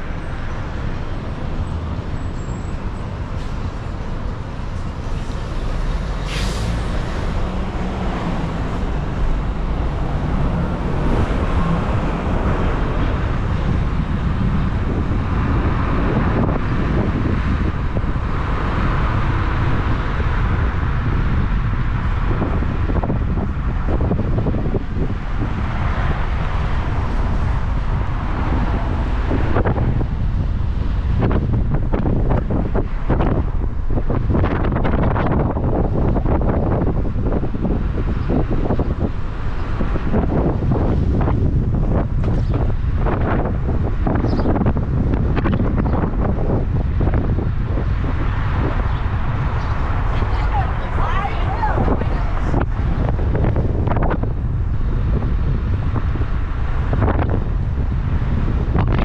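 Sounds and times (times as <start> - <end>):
tyre and road noise: 0.0 - 59.0
wind buffeting a camera: 0.0 - 59.0.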